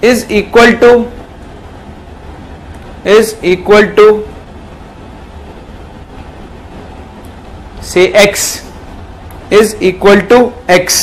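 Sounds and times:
man speaking: 0.0s - 1.2s, 3.0s - 4.4s, 7.8s - 8.8s, 9.5s - 11.0s
low background hum: 0.0s - 11.0s.

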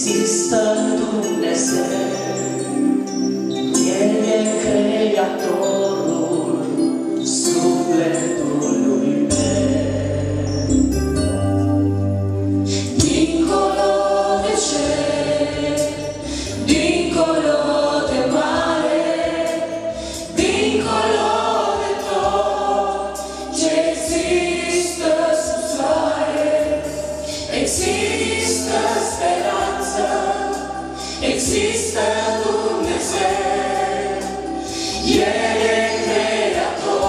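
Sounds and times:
choir singing gospel song: 0.0s - 10.7s, 12.7s - 37.0s.

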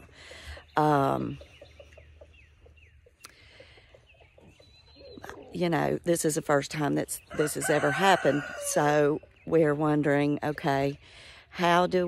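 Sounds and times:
high bird chirps: 1.1s - 5.3s
chicken clucking: 1.2s - 5.6s.

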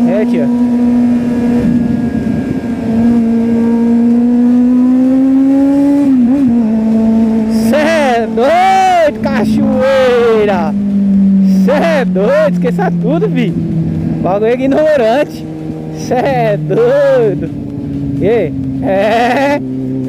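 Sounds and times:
motorcycle engine at high revs: 0.0s - 20.0s.

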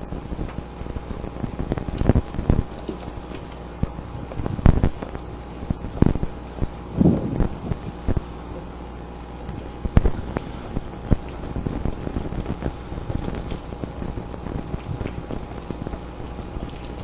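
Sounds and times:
low hum: 0.0s - 17.0s
wind noise: 5.8s - 8.3s.

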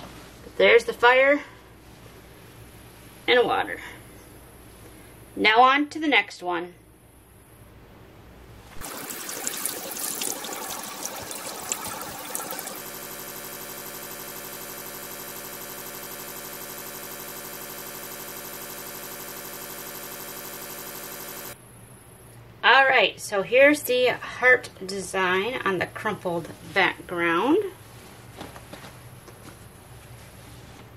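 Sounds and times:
tap water running into sink: 8.8s - 13.0s.

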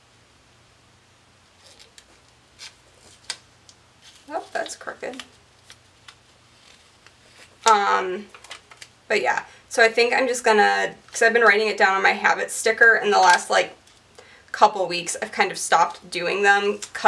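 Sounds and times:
paper rustling: 1.6s - 7.7s
person speaking: 4.2s - 5.4s, 7.6s - 8.4s.

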